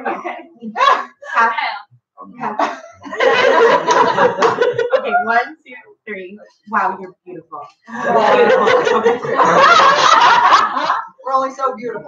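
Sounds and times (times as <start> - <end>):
group of people laughing: 2.6 - 5.4, 7.9 - 11.2.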